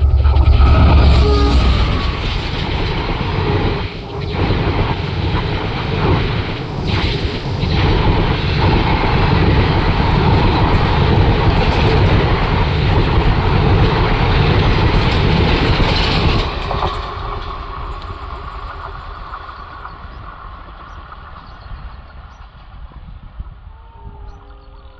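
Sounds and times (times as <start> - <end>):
train wheels rushing on rail: 0.0 - 24.9.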